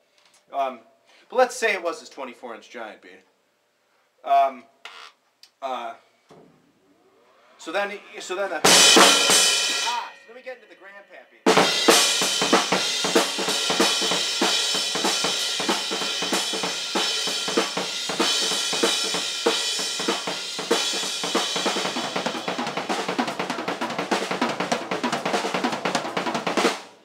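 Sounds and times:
ringing cymbals: 7.6s - 22.6s
drum kit played hard: 8.6s - 10.2s, 11.5s - 27.0s.

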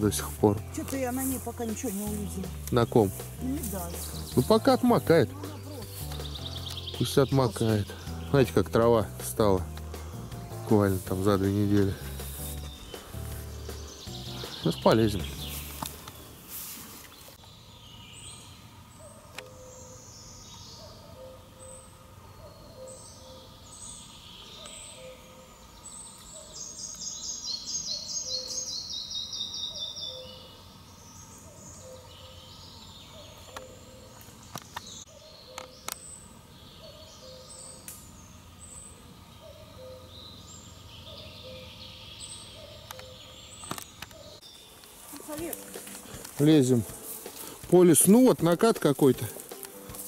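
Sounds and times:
songbirds singing: 0.0s - 50.0s.

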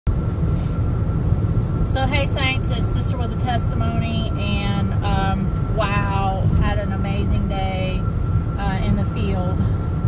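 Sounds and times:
vehicle cabin rumble: 0.1s - 10.0s.

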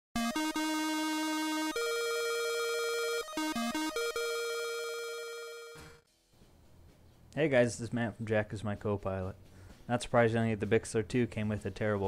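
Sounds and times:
synthesized jingle buzzy notes: 0.2s - 6.0s.

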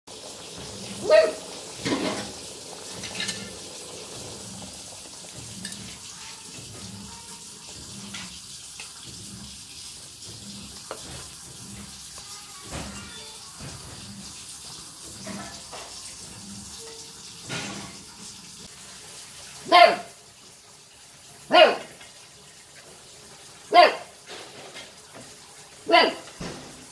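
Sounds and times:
eggplants sizzling in oil: 0.1s - 26.9s.

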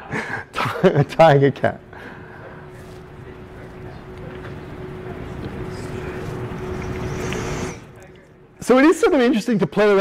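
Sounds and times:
thin steady hum: 0.0s - 9.3s
steady background noise: 0.0s - 10.0s.

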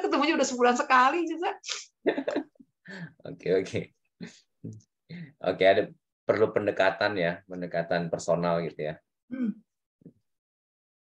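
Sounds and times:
person humming hmm: 9.3s - 9.6s.

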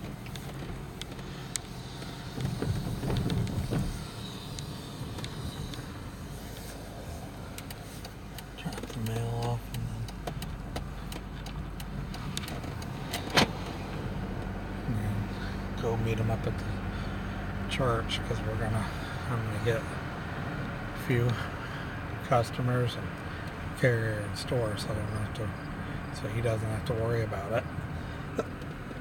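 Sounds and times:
car engine and road hum: 0.0s - 29.0s.

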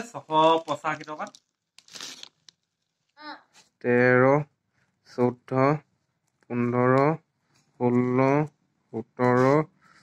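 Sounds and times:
person speaking: 0.0s - 1.5s, 3.2s - 9.9s
plastic wrapping crinkling: 0.0s - 3.2s.

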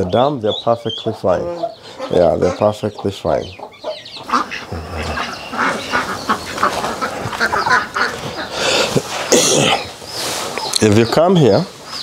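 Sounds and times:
ducklings calling: 0.0s - 12.0s.

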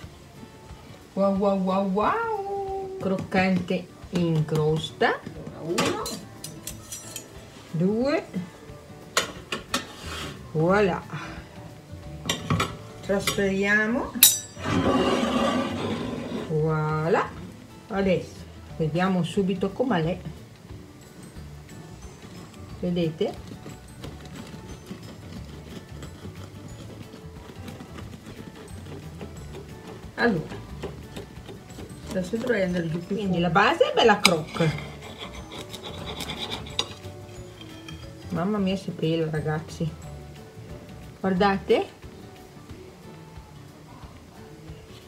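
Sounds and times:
faint background music: 0.0s - 45.0s
metal baking tray clink: 5.8s - 7.3s, 14.2s - 14.8s
bread knife sawing through crust: 23.3s - 32.9s, 34.3s - 37.0s.

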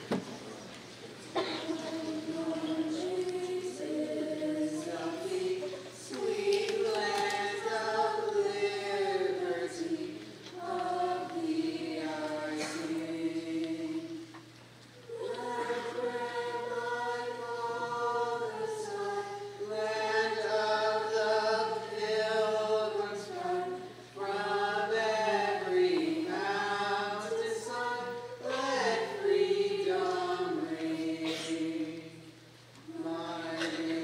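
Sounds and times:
choir singing: 1.3s - 14.4s, 15.1s - 34.0s.

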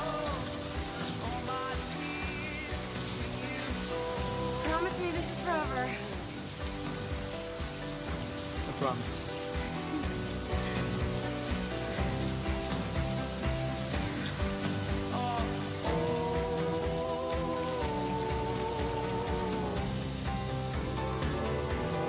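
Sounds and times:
heavy rain pouring: 0.0s - 22.0s
slow music with held notes: 0.0s - 22.0s.

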